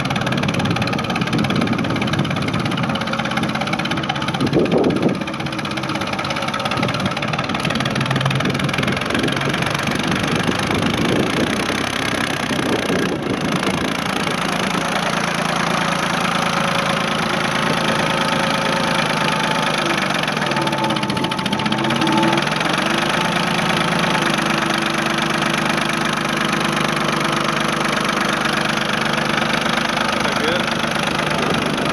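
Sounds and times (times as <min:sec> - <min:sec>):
tractor diesel engine running: 0:00.0 - 0:31.9.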